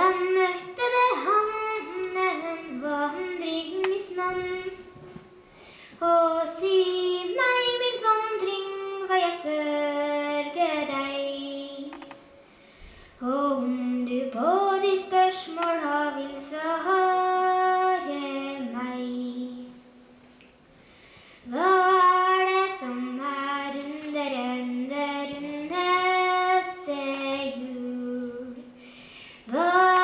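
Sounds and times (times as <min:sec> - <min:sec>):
child singing unaccompanied: 0:00.0 - 0:05.1, 0:06.0 - 0:12.2, 0:13.2 - 0:20.0, 0:21.5 - 0:28.8, 0:29.5 - 0:30.0.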